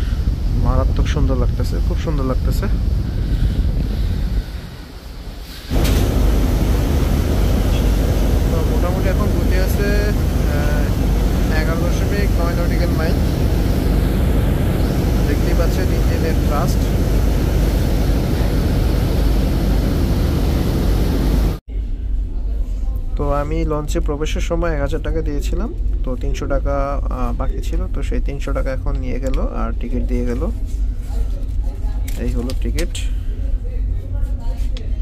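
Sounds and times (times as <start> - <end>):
low boat engine rumble: 0.0 - 21.6.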